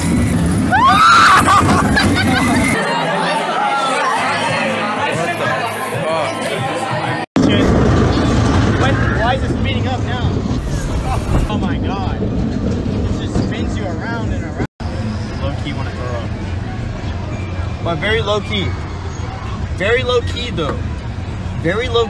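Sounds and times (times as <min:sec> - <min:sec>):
fairground ride rumble: 0:00.0 - 0:03.0, 0:06.7 - 0:22.0
party crowd chatter: 0:01.8 - 0:07.3.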